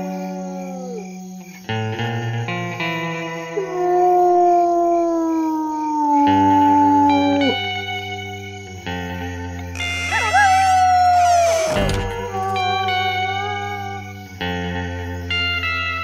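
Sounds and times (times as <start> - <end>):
wolf howling: 0.0 - 1.2, 3.5 - 7.9, 9.8 - 14.4.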